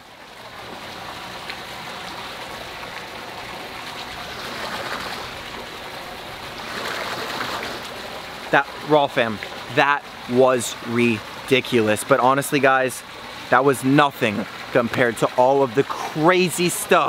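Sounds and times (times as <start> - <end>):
running water rushing: 0.0 - 17.0.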